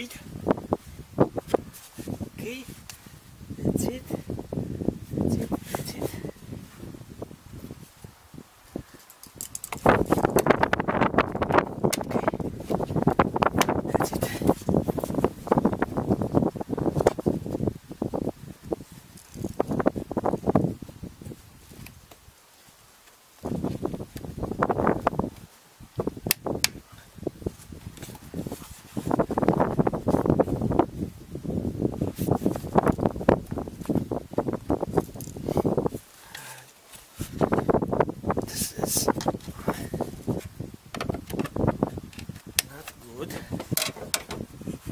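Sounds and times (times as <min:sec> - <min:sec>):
hard plastic rattling and clicking: 0:43.6 - 0:44.4.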